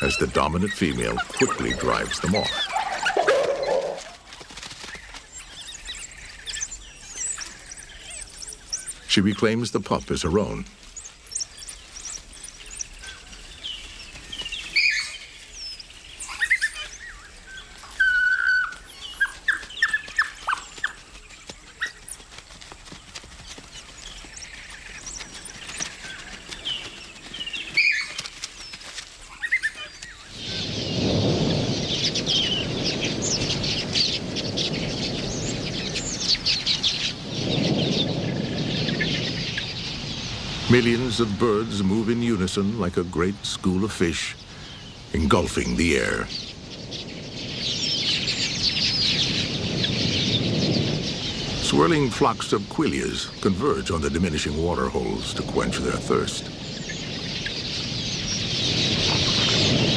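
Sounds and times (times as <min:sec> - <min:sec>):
flock wingbeats and chirping: 0:00.0 - 0:59.9.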